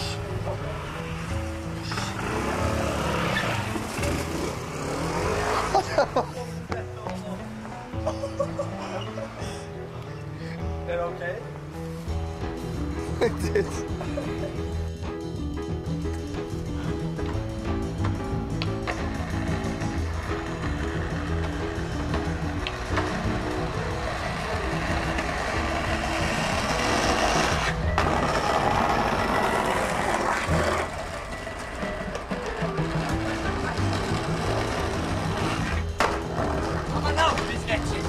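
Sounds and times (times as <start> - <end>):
skateboard grinding on stone: 0.0 - 6.3, 18.6 - 38.0
music with walking bass line: 5.7 - 38.0
skateboard clacks: 17.1 - 38.0.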